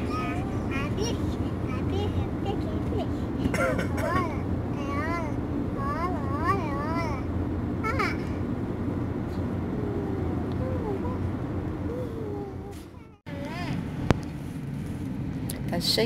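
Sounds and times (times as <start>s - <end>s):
small child vocalizing: 0.0s - 8.3s, 9.7s - 11.2s, 11.8s - 13.8s
car cabin rumble: 0.0s - 15.2s.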